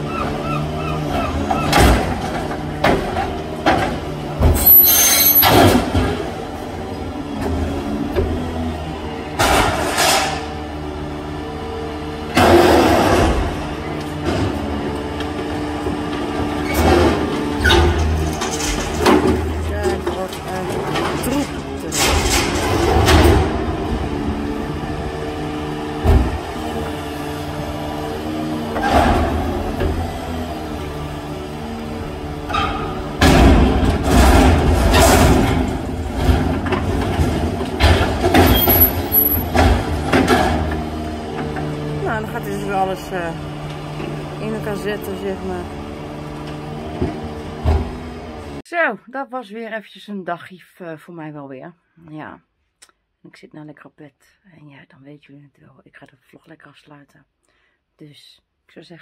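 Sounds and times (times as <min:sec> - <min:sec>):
truck engine and hydraulics humming: 0:00.0 - 0:48.6
loud metal clanks and crashes: 0:09.3 - 0:10.6, 0:16.0 - 0:23.9, 0:32.5 - 0:41.6.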